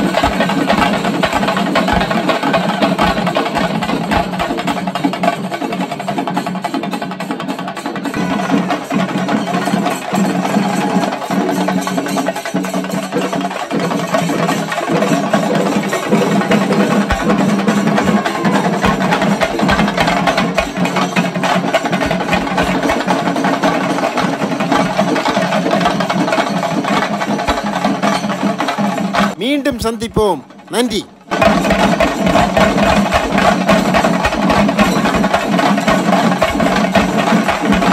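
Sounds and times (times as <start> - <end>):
drums beaten in fast roll: 0.0 - 37.9.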